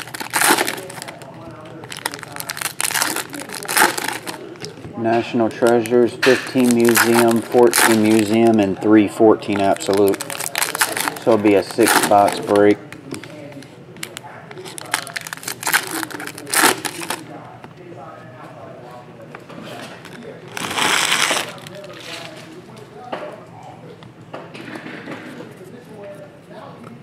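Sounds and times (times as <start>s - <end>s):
foil wrappers crinkling and tearing: 0.0s - 17.3s, 20.0s - 22.6s
faint voices: 0.0s - 27.0s
cards being shuffled: 9.6s - 12.8s.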